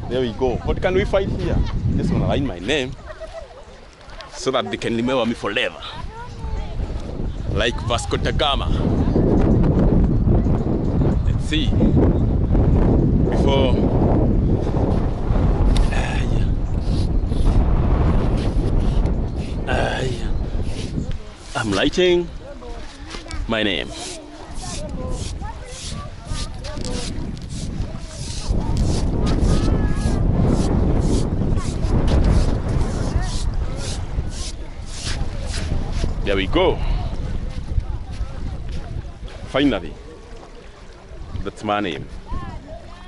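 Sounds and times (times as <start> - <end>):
wind buffeting microphone: 0.0 - 43.0
faint voices: 15.7 - 43.0
footsteps on sand: 20.6 - 36.2, 37.1 - 39.6.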